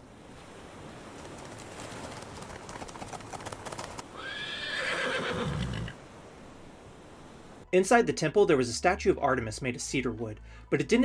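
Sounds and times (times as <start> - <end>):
galloping horse hooves: 0.6 - 4.4
horse whinnying: 4.1 - 6.0.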